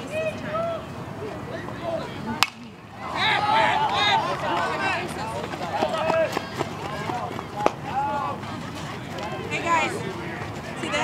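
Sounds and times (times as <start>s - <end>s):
people shouting and calling out: 0.0s - 8.4s.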